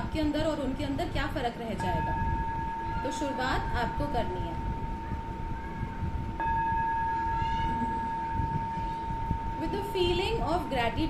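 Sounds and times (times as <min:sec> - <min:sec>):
bell-like ringing tone: 0:01.8 - 0:05.8, 0:06.4 - 0:10.7.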